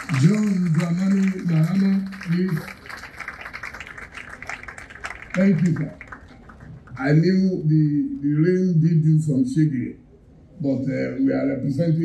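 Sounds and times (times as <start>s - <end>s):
audience clapping: 0.0s - 7.2s.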